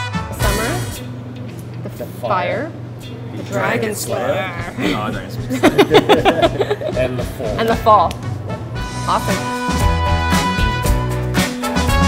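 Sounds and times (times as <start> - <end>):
swing music with brass: 0.0 - 1.1, 8.4 - 12.0
low steady hum: 0.3 - 8.8.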